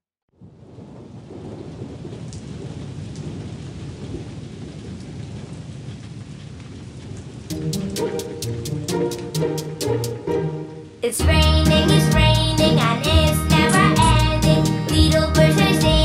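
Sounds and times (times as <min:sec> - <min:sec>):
steady falling rain: 0:00.3 - 0:16.0
music: 0:07.5 - 0:16.0.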